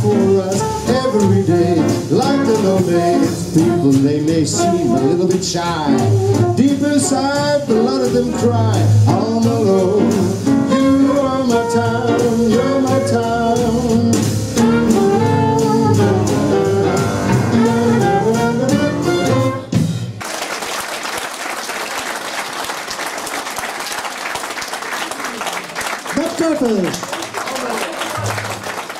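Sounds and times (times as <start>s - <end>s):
saxophone melody: 0.0s - 8.3s, 10.2s - 19.8s
live band music: 0.0s - 28.9s
audience applauding: 20.2s - 28.9s.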